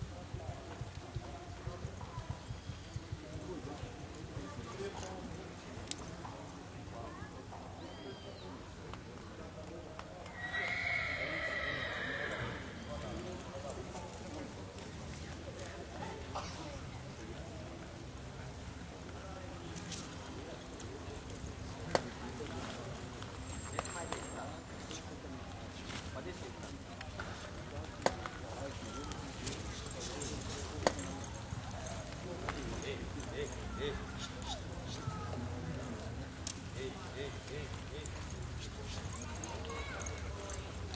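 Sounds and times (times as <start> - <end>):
horse hooves in dirt: 0.0 - 6.6, 19.0 - 40.9
murmur of voices: 0.0 - 40.9
horse whinnying: 10.3 - 12.9.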